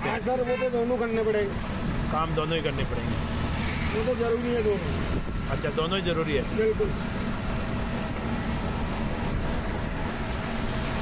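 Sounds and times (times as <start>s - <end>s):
vehicle engine running: 1.0s - 11.0s.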